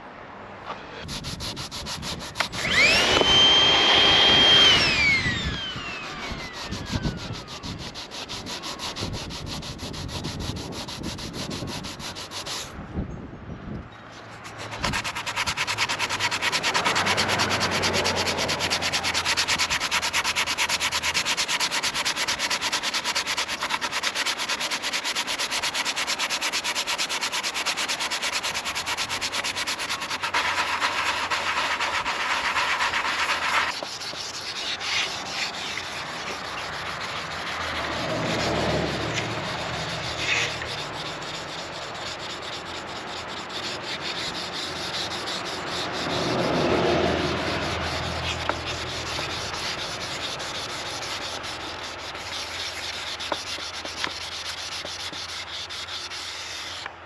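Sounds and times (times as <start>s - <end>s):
sandpaper sanding by hand: 1.0s - 12.8s, 14.2s - 57.0s.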